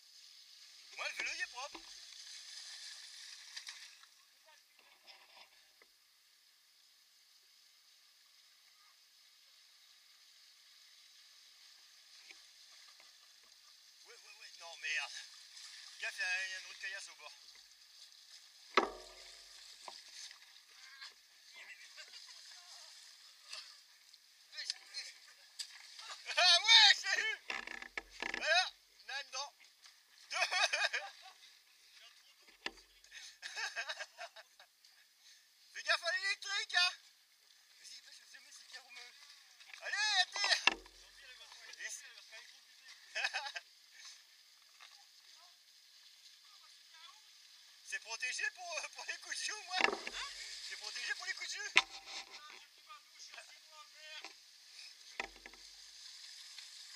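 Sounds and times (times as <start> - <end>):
bike tyres splashing through water: 10.5 - 23.8.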